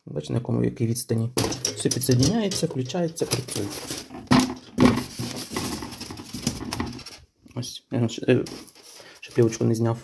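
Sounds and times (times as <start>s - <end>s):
foam rustling and scraping: 3.1s - 7.2s, 8.4s - 9.7s.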